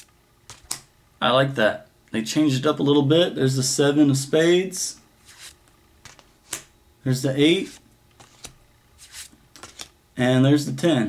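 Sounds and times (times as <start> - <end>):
playing card clicks: 0.5 - 0.9, 5.3 - 6.7, 8.2 - 10.0
playing card sliding: 5.2 - 6.7, 7.6 - 10.0.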